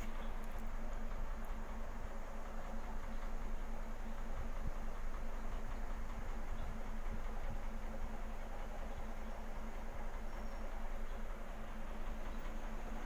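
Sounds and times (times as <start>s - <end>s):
aquarium pump humming: 0.0s - 13.0s.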